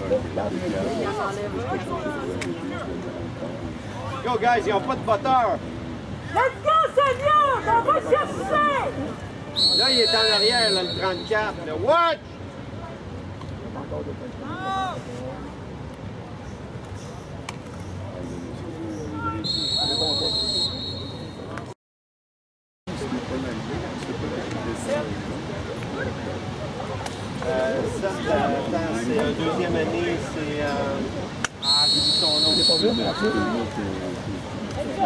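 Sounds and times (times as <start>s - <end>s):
voices of spectators: 0.0s - 21.8s, 22.9s - 35.0s
voices calling: 6.4s - 12.3s, 18.4s - 21.7s, 31.4s - 34.1s
referee's whistle blast: 9.6s - 11.6s, 19.4s - 21.5s, 31.6s - 33.3s.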